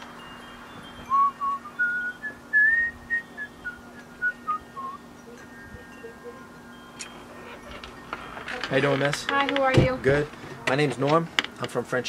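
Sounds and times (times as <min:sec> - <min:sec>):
steady low hum: 0:00.0 - 0:11.6
person whistling a tune: 0:01.0 - 0:06.4.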